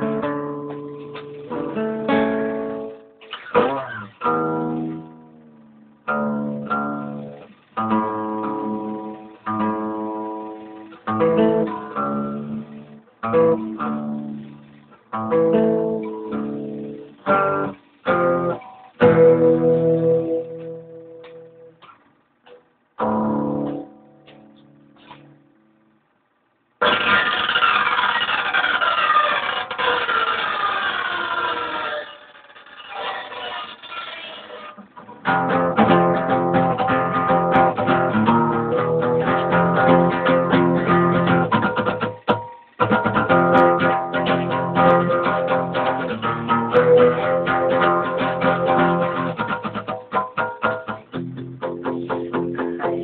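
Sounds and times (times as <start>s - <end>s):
acoustic guitar playing: 0.0s - 53.0s.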